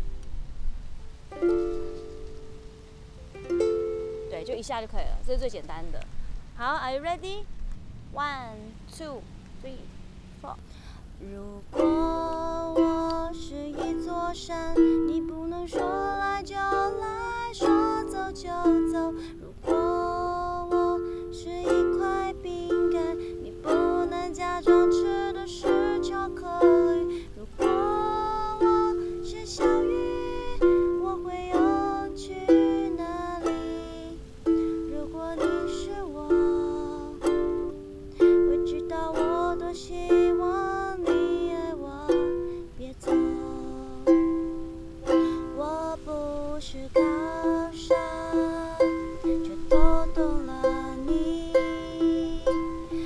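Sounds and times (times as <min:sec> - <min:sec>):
ukulele strumming: 0:01.2 - 0:05.4, 0:11.7 - 0:53.0
woman singing: 0:09.6 - 0:53.0.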